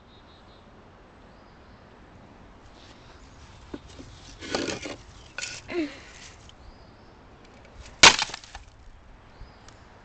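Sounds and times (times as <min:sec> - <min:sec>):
clatter of shards: 0:04.3 - 0:05.7, 0:08.0 - 0:08.7
flower pot smashing on stone: 0:08.0 - 0:08.7.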